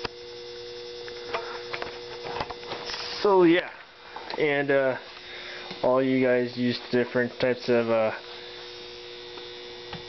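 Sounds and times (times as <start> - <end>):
power supply electrical hum: 0.0 - 10.0.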